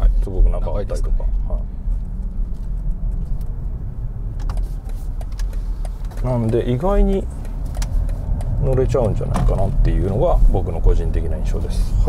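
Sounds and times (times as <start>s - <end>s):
road and tyre noise in car cabin: 0.0s - 12.0s.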